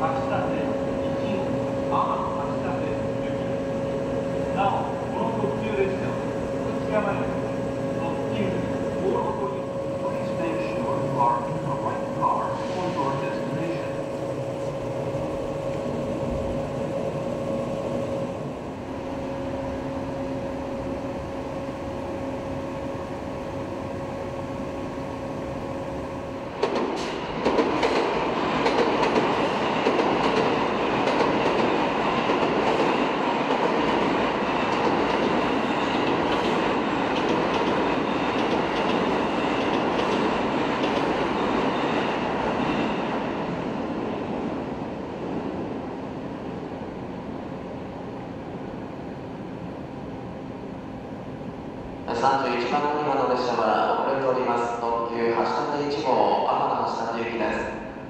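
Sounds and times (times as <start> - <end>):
electrical hum from train: 0.0 - 58.0
train rumbling on rails: 0.0 - 58.0.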